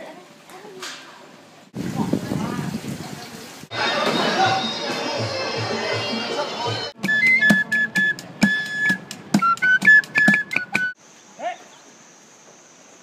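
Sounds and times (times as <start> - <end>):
band music with drum beat: 3.7 - 11.0
high piping melody: 3.7 - 11.0
buckets and drum struck with sticks: 6.9 - 11.0.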